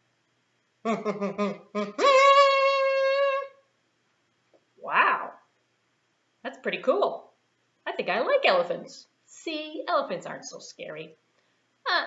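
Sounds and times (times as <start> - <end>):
kazoo tooting: 0.8 - 3.7.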